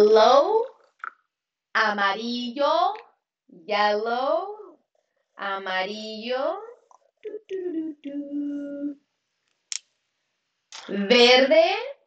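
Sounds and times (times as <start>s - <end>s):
woman speaking: 0.0s - 0.7s, 1.8s - 3.0s, 3.6s - 4.7s, 5.4s - 9.0s, 10.8s - 12.0s.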